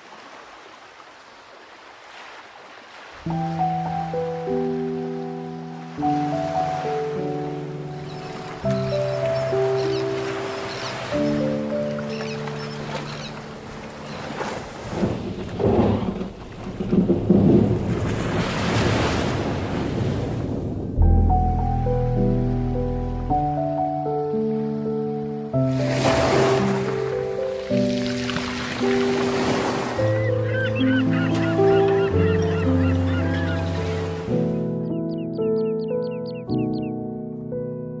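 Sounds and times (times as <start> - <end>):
surf washing: 0.0 - 24.8, 25.6 - 34.5
piano and orchestral music: 3.2 - 14.7, 21.0 - 38.0
flock of birds calling: 8.0 - 14.4, 29.6 - 34.2
waves washing on pebbles: 14.2 - 20.4, 25.7 - 30.1
low rolling rumble: 15.2 - 18.6, 19.5 - 23.7.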